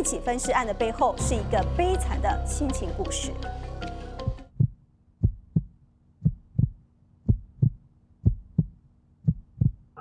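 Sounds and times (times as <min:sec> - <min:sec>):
heartbeat thumps: 0:04.2 - 0:10.0.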